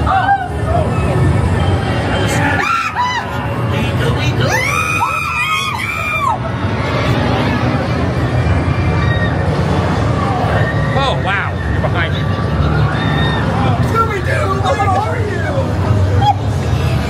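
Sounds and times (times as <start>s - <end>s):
crowd hubbub: 0.0s - 17.0s
shrill wavering screams: 2.3s - 3.5s, 4.4s - 6.5s, 12.6s - 13.8s.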